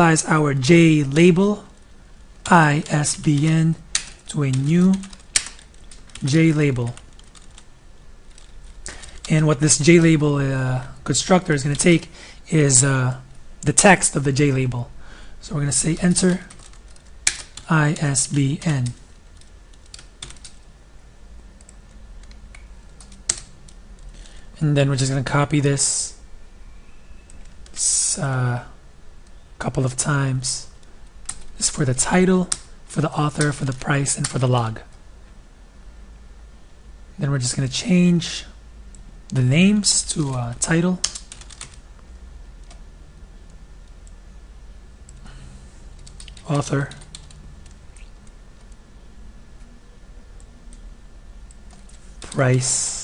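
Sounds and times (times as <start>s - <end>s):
keyboard typing: 2.4s - 7.7s, 8.3s - 9.3s, 16.0s - 20.6s, 21.6s - 24.4s, 40.1s - 41.8s, 45.9s - 48.8s.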